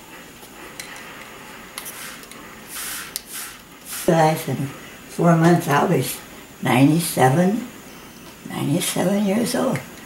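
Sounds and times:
spray bottle squirts: 1.8s - 4.1s.

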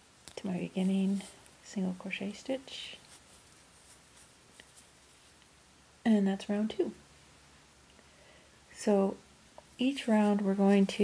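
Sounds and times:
faint rustling of yarn: 0.0s - 11.0s.

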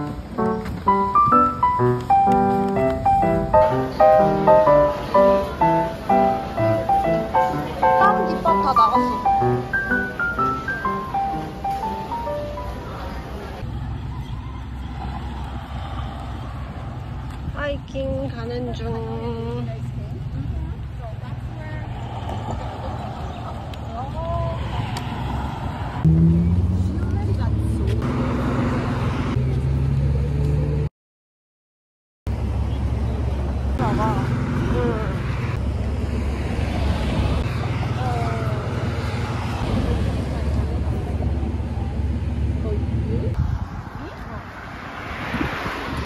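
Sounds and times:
road traffic rumble: 0.0s - 30.9s, 32.3s - 46.0s
wind on microphone: 43.3s - 46.0s.

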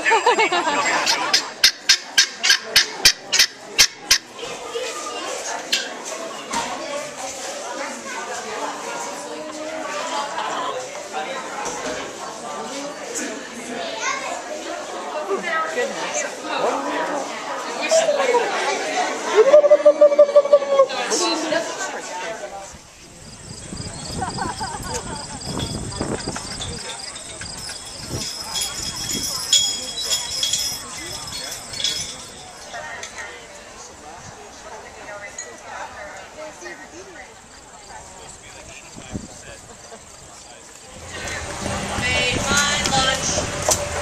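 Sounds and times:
people's voices: 0.0s - 44.0s
horse hooves walking: 23.0s - 32.8s.

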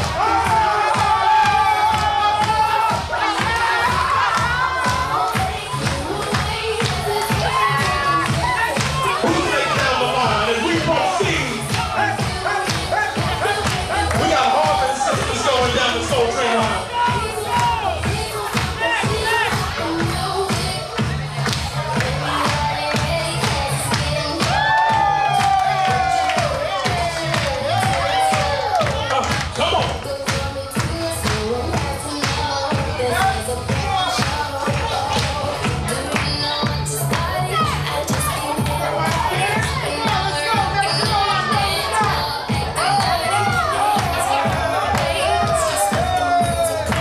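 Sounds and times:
people cheering: 0.0s - 30.2s, 31.3s - 47.0s
dance music with heavy bass: 0.0s - 47.0s
people talking: 9.0s - 19.8s.

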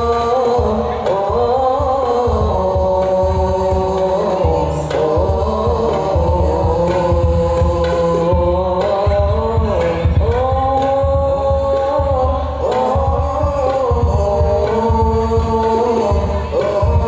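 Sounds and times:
frame drums beating: 0.0s - 17.0s
men singing through a pa: 0.0s - 17.0s.

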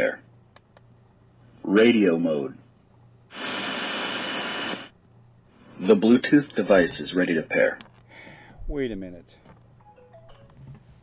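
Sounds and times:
faint high whine: 1.4s - 7.2s
radio static hissing: 3.3s - 5.0s.

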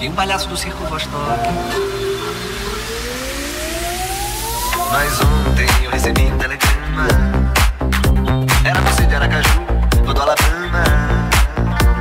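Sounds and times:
low bass notes: 0.7s - 12.0s
synth tone gliding upward: 1.1s - 5.6s.

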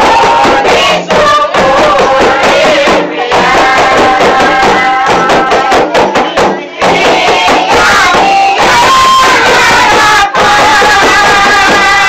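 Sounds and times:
hand percussion beat: 0.0s - 12.0s
music with singing: 0.0s - 12.0s.

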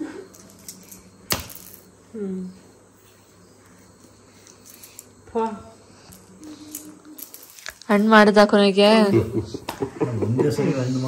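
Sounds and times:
crickets chirping: 0.0s - 11.0s
game piece striking tiled floor: 0.4s - 1.9s.

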